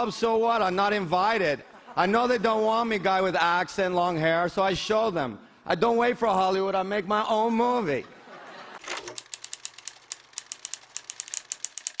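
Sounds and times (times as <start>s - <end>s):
rapid clicking: 8.8s - 12.0s.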